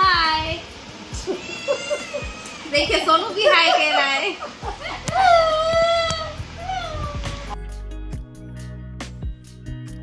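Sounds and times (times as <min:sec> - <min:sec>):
background music: 0:00.0 - 0:10.0
kitten meowing: 0:01.4 - 0:02.6.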